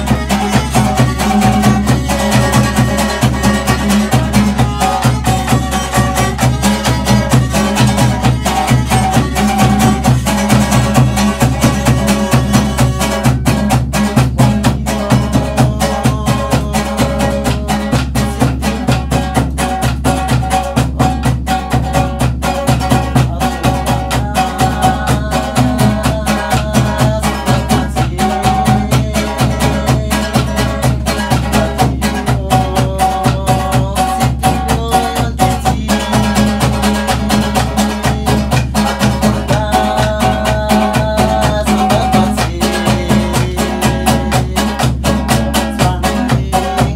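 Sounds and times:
drum beat: 0.0s - 46.9s
strummed guitar: 0.0s - 46.9s.

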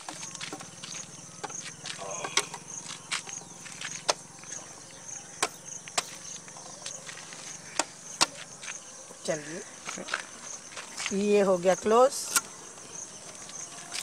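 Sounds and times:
insect chirping: 0.0s - 14.0s.

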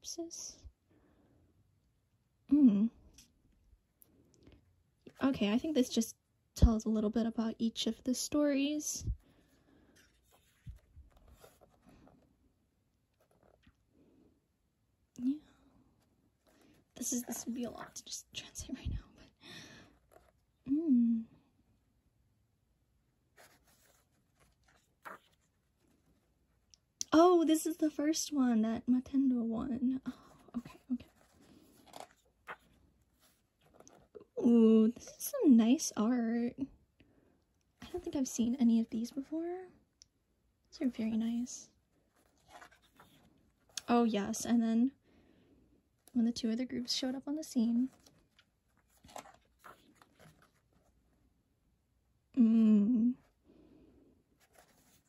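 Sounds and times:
paper pages handled: 9.8s - 12.3s, 23.4s - 26.7s, 30.2s - 34.2s, 42.0s - 43.8s, 47.8s - 51.2s, 54.4s - 55.0s.

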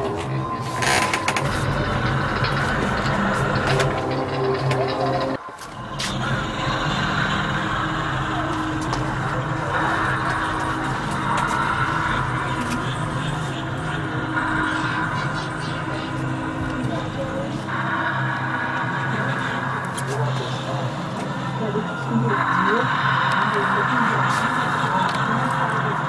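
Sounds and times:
low droning hum: 0.0s - 26.0s
muffled voices: 0.0s - 26.0s.

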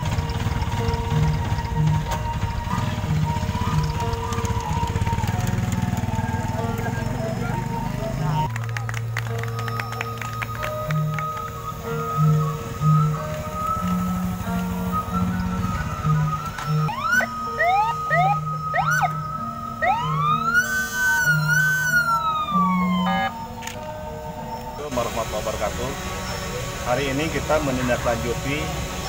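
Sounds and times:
electronic siren whooping and wailing: 0.0s - 23.8s
background music: 0.0s - 29.0s.

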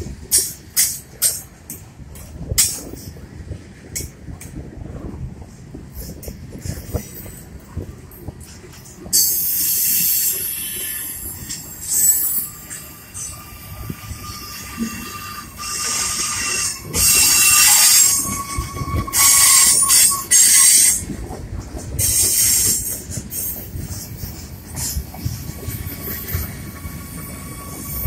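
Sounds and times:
low rumble of wheels on track: 0.0s - 28.0s
train wheels squealing on rails: 6.0s - 28.0s.

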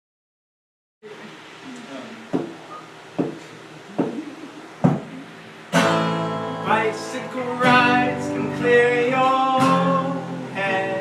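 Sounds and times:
sharp percussive knocks: 2.3s - 2.6s, 3.2s - 3.4s
acoustic guitar strumming: 4.8s - 11.0s.

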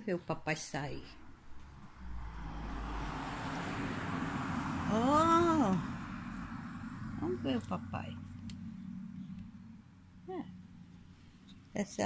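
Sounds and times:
low street rumble: 0.0s - 12.0s
rising and falling whine: 1.4s - 11.4s.

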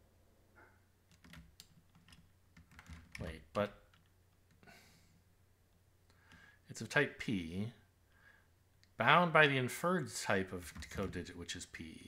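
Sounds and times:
computer keyboard typing: 1.1s - 4.1s.

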